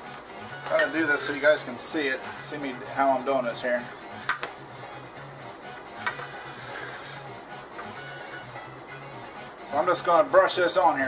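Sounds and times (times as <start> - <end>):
background music with low pulse: 0.0 - 11.0.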